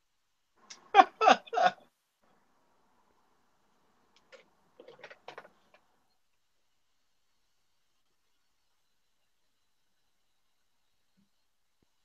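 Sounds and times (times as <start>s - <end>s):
person laughing: 0.8s - 1.8s.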